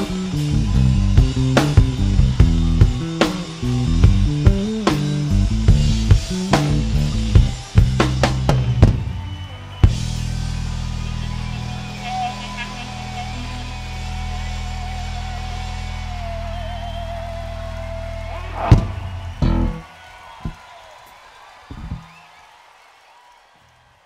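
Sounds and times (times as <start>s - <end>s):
live rock band: 0.0s - 20.6s
drum and bass hits: 18.2s - 19.8s.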